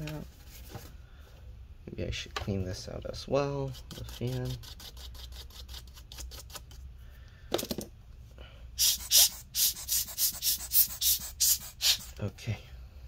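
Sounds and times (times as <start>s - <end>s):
swab scrubbing cooling fan: 3.5s - 6.8s, 8.8s - 12.2s.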